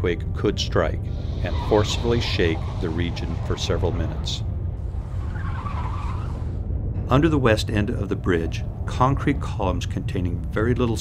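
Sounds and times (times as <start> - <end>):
deep earthquake rumble: 0.7 - 11.0
faint wavering tire squeal: 1.1 - 6.6.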